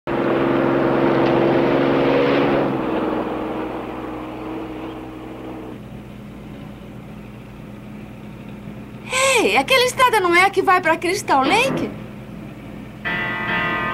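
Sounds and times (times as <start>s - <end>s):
car engine driving: 0.1s - 5.8s.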